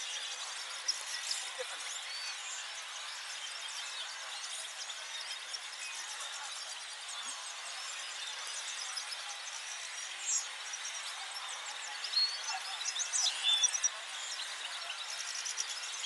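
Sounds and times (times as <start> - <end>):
finches chirping and twittering: 0.0 - 16.0.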